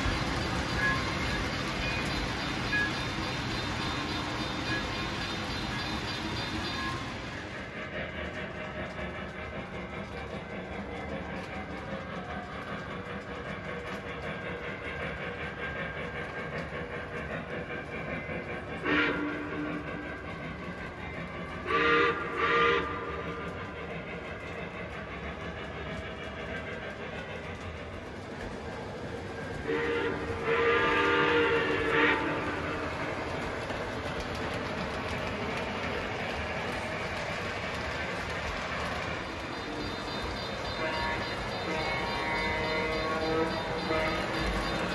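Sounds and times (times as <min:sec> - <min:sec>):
model train running on track: 0:00.0 - 0:44.9
electronic train horn blasts: 0:21.6 - 0:23.1, 0:29.6 - 0:32.8, 0:39.6 - 0:44.9.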